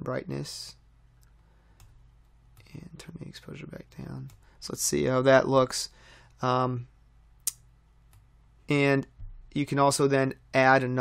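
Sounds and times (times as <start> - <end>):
man speaking: 0.0 - 0.8, 2.6 - 6.9, 8.7 - 11.0
low steady hum: 0.0 - 11.0
computer mouse clicks: 1.2 - 2.8.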